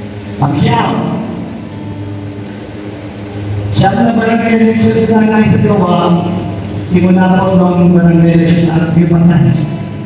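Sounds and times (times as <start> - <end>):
faint background noise: 0.0 - 10.0
steady low hum: 0.0 - 10.0.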